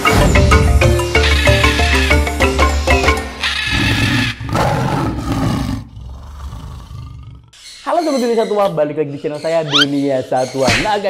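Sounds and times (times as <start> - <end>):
mallet percussion music: 0.0 - 3.4
animal roar sound effect: 3.6 - 7.5.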